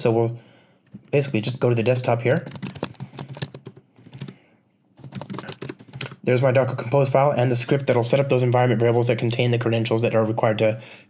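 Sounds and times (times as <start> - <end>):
typing on computer keyboard: 1.4 - 4.4, 5.0 - 6.2.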